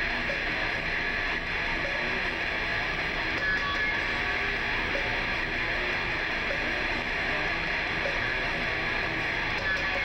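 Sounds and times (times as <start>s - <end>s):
distorted electric guitar: 0.0s - 10.0s
heavy metal band playing: 0.0s - 10.0s.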